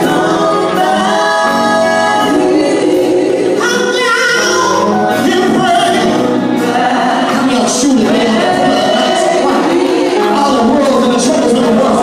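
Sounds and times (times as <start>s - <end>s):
women singing gospel: 0.0s - 12.0s.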